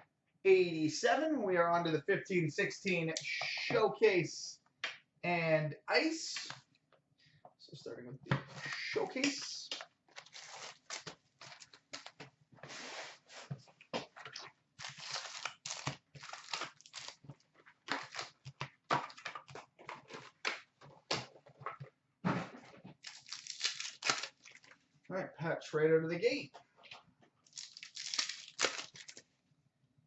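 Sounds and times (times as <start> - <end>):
packs being torn open: 9.2 - 12.2, 14.8 - 17.2, 17.8 - 20.7, 23.0 - 24.8, 27.5 - 29.2
wrapper crinkling and rustling: 10.1 - 12.2, 14.8 - 20.4, 23.0 - 24.8, 27.5 - 29.2.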